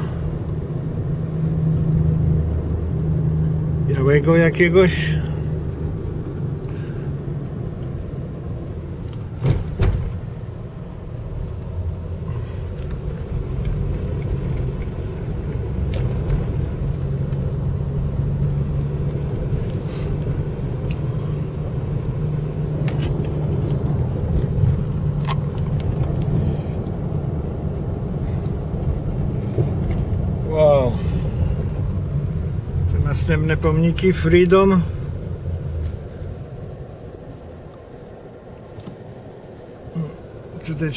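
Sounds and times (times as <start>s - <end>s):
engine and road rumble: 0.0s - 40.9s.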